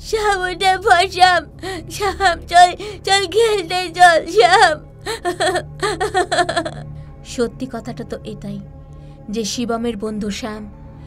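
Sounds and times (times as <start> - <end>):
soft background music: 0.0 - 11.0
young person crying and sobbing: 0.2 - 6.9.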